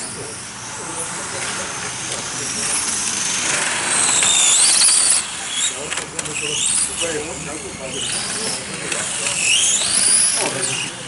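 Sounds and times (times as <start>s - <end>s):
model race car whine: 0.0s - 11.0s.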